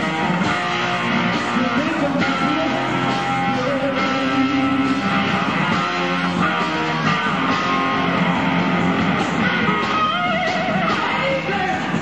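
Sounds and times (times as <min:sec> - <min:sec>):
blues-rock band playing: 0:00.0 - 0:12.0
electric guitar: 0:00.0 - 0:12.0.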